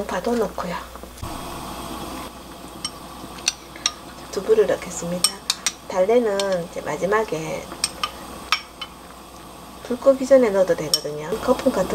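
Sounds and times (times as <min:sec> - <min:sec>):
stew bubbling in a pot: 0:00.2 - 0:11.9.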